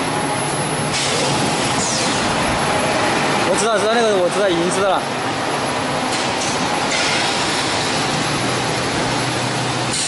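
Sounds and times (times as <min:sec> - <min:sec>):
production line machinery: 0:00.0 - 0:10.0.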